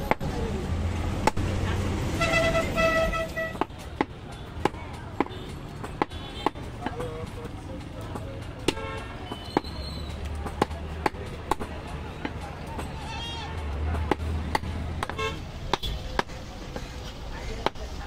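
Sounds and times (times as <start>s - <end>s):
cleaver chopping on wooden block: 0.0s - 0.3s, 1.1s - 1.5s, 3.5s - 7.0s, 8.1s - 12.9s, 13.9s - 16.9s
street noise: 0.0s - 18.0s
horn honking: 2.2s - 3.7s, 15.0s - 16.0s.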